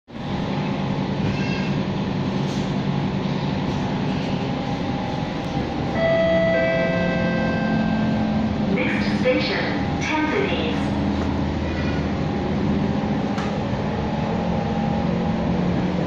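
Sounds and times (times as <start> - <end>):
train rumbling: 0.1 - 16.0.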